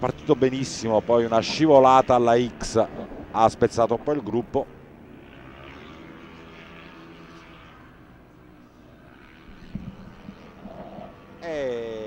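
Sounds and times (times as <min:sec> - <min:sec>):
scooter engines droning: 0:00.0 - 0:12.0.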